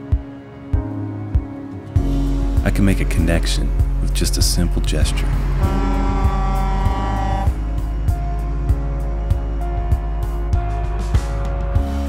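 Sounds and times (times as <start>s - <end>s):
background music with steady beat: 0.0s - 12.0s
truck air horn blast: 5.4s - 8.2s.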